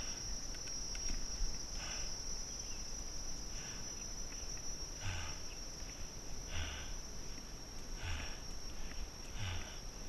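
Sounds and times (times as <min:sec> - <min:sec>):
shrill insect chorus: 0:00.0 - 0:10.0.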